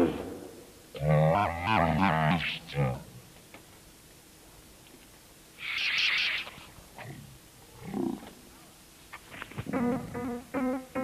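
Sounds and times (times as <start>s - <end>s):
low distorted vocal-like sound: 0.0s - 3.3s, 5.7s - 8.8s.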